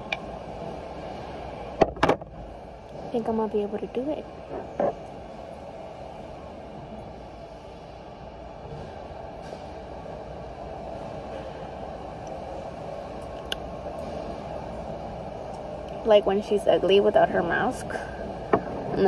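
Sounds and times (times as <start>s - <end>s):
warehouse background drone: 0.0s - 19.0s.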